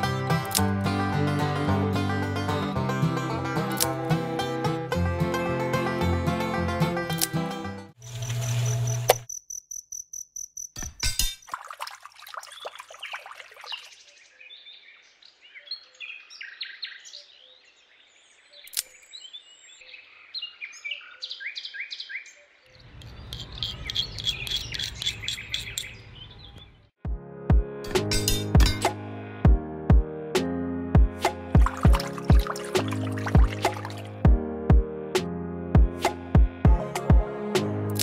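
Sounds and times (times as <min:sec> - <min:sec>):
birds chirping: 0:12.4 - 0:26.9.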